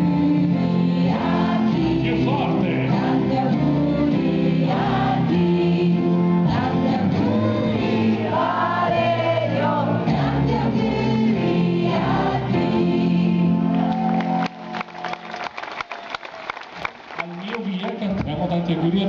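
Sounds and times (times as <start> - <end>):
band with singers performing: 0.0 - 14.4
audience clapping: 13.7 - 18.9.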